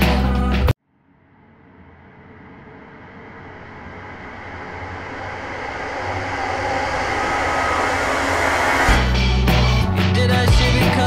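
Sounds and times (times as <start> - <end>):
rising noise sweep: 1.5 - 10.1.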